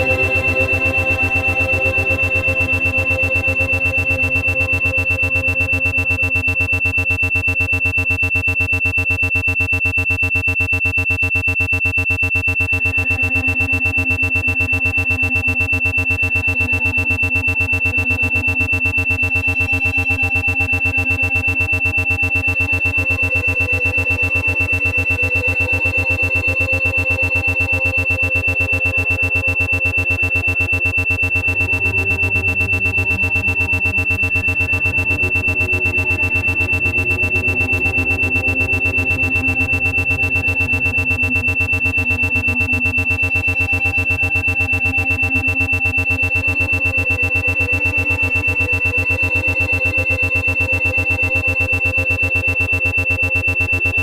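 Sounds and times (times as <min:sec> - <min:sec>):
ambient synthesizer pads: 0:00.0 - 0:08.1, 0:12.8 - 0:54.0
high pulsing tone: 0:00.0 - 0:54.0.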